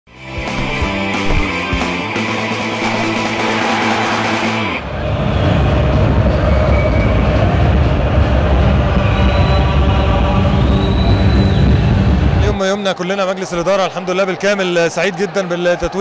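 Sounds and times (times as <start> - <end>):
rock intro jingle: 0.3 - 4.8
crowd noise with low rumble: 2.8 - 16.0.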